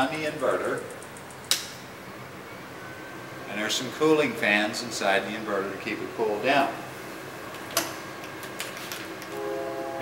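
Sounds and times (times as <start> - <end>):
power inverter fan hum: 0.0 - 10.0.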